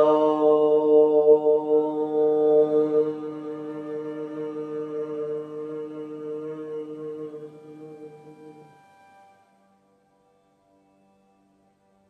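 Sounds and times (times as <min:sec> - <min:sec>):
woman chanting om: 0:00.0 - 0:09.6.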